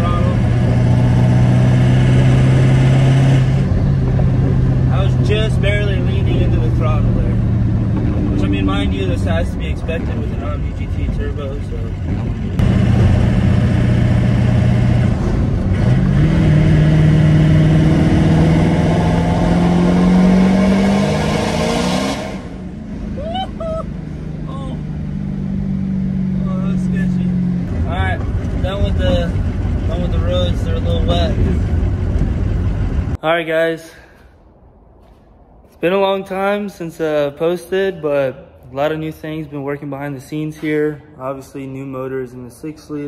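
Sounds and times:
diesel engine pulling hard: 0.0s - 33.2s.

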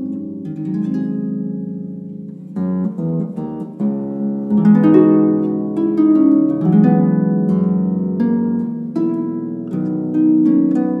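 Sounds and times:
harp playing: 0.0s - 11.0s.

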